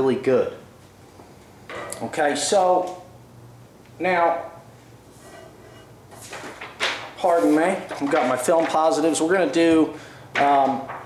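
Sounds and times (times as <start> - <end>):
plastic sheets rustling: 5.5 - 11.0.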